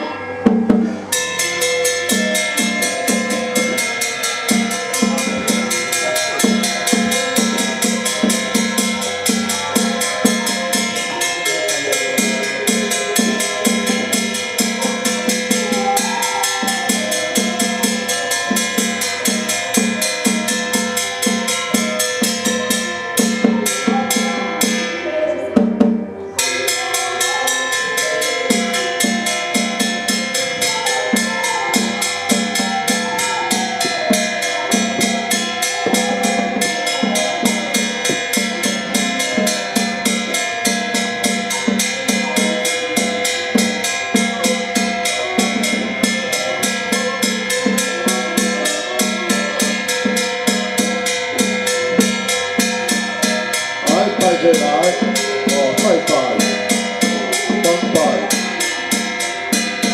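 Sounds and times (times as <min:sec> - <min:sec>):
gongs and cymbals ringing: 0:00.0 - 0:59.9
drum beaten in fast strokes: 0:28.5 - 0:59.9.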